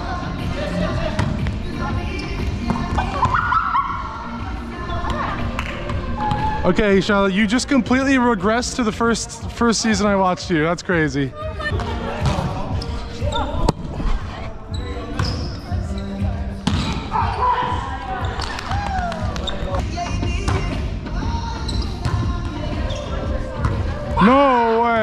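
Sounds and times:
players' voices chattering: 0:00.0 - 0:25.0
volleyball slaps: 0:16.6 - 0:17.2.

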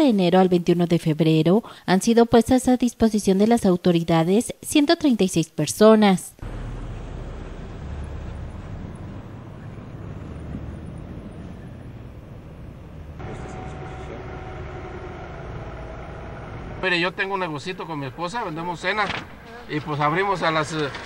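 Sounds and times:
passing traffic: 0:06.4 - 0:21.0
vehicle engines idling: 0:06.4 - 0:21.0
droning tone: 0:11.4 - 0:19.8.

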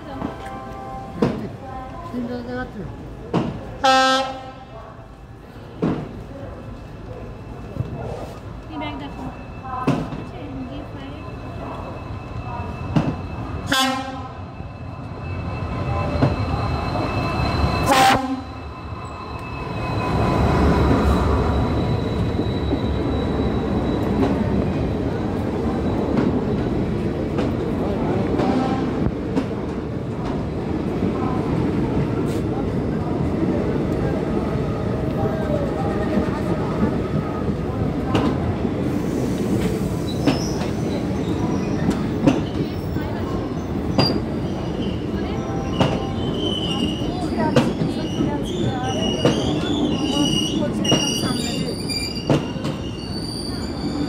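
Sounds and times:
train horn blasts: 0:03.8 - 0:04.6, 0:13.6 - 0:14.4, 0:17.8 - 0:18.6.

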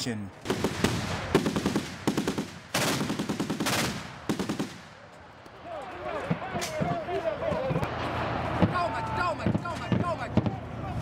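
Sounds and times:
automatic weapons fire: 0:00.4 - 0:05.0.

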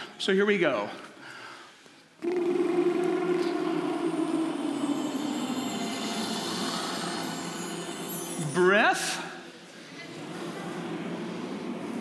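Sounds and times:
men singing lip trill drone: 0:02.2 - 0:08.4.

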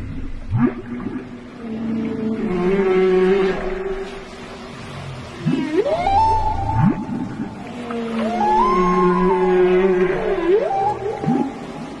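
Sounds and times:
whale song calls: 0:05.4 - 0:12.0.

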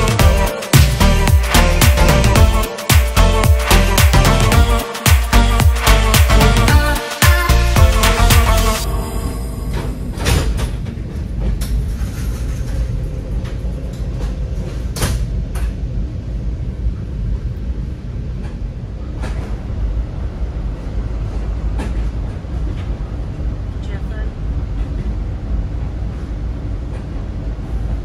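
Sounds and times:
train rumbling in motion: 0:08.8 - 0:28.0.

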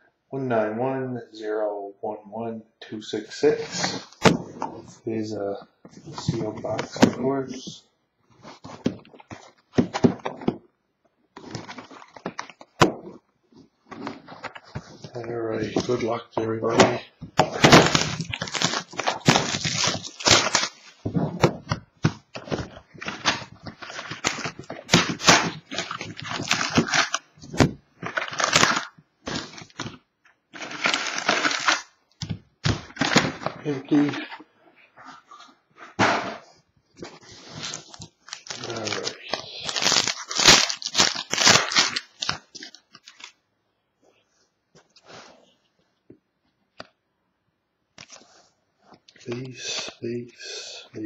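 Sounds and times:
foil card packs crinkling: 0:17.4 - 0:21.1, 0:22.4 - 0:30.0, 0:30.6 - 0:31.9, 0:37.2 - 0:43.3.

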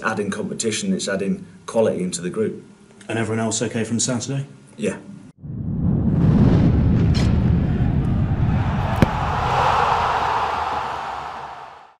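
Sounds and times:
low rumbling whoosh: 0:05.4 - 0:10.2.

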